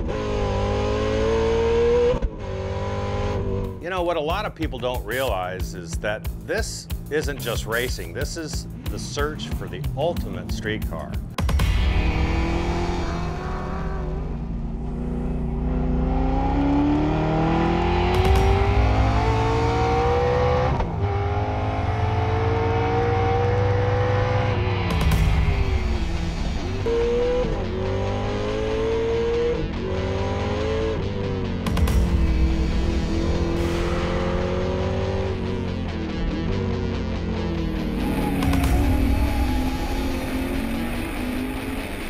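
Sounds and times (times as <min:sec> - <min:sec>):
race car engine revving: 0:00.0 - 0:03.8, 0:06.0 - 0:42.0.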